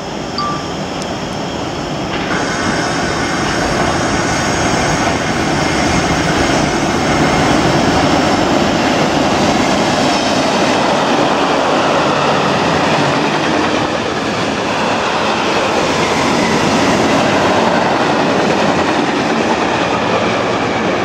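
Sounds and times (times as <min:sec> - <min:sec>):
freight train passing: 0:00.0 - 0:21.0.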